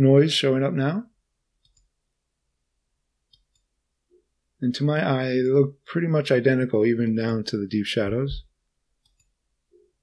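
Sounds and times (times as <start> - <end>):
faint computer mouse clicks: 1.6 - 1.9, 9.0 - 9.4.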